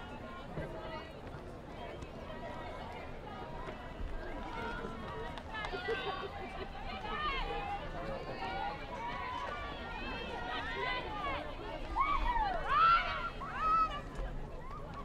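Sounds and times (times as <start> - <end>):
crowd chattering and calling out: 0.0 - 15.0.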